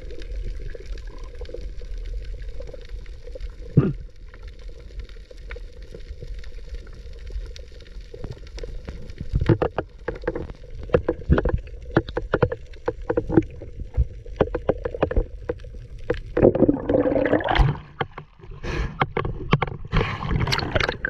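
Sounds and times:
muffled underwater clicks and knocks: 0:08.2 - 0:21.0
rush of water: 0:16.3 - 0:21.0.

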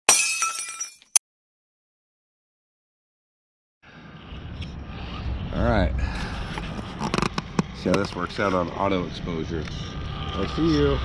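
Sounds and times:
glass breaking crash: 0:00.1 - 0:01.2.

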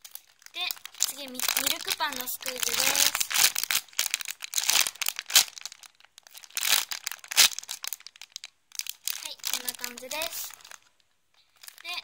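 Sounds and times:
foam toy squishing: 0:00.0 - 0:10.8
plastic bag crinkling: 0:00.0 - 0:12.0.

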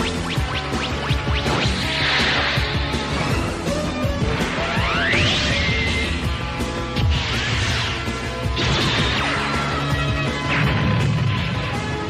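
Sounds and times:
anime soundtrack music: 0:00.0 - 0:12.0.

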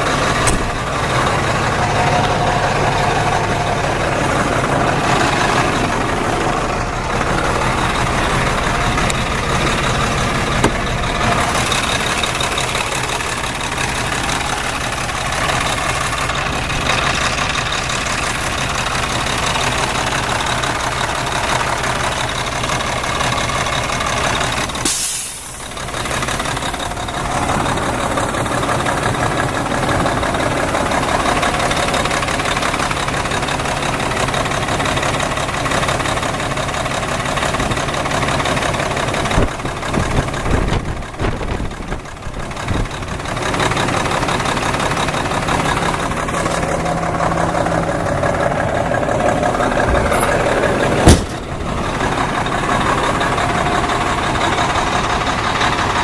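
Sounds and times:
diesel truck engine idling: 0:00.0 - 0:56.0
sharp knock: 0:51.0 - 0:51.4.

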